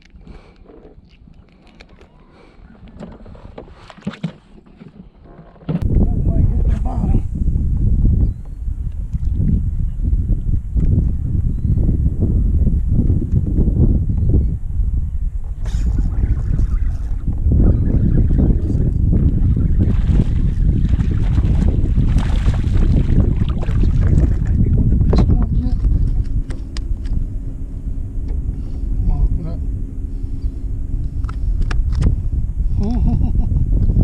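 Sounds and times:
wind buffeting microphone: 5.8 - 34.0.

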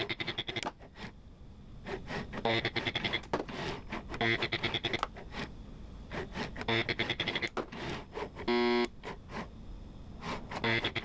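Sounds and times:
robot arm clicking and whirring: 0.0 - 1.2, 1.8 - 5.5, 6.1 - 9.5, 10.2 - 11.0
short steady buzz: 6.3 - 9.5.

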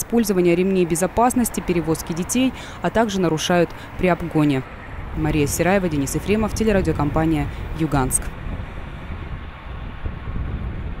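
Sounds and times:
truck engine and tyres rumbling: 0.0 - 11.0
wind buffeting microphone: 0.0 - 11.0.

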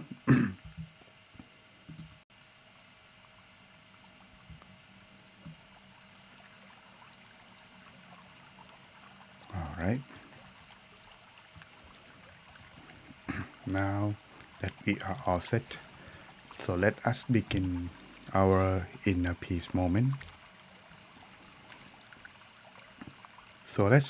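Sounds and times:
man clearing throat: 0.0 - 0.6, 13.3 - 13.6
low steady hum: 0.0 - 24.0
flowing stream: 2.7 - 24.0
man speaking a word: 9.5 - 10.0.

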